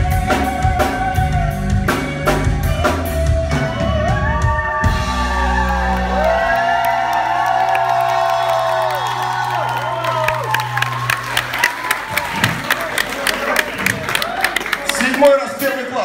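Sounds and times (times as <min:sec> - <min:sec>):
crowd cheering: 0:04.8 - 0:16.0
audience clapping: 0:05.5 - 0:15.9.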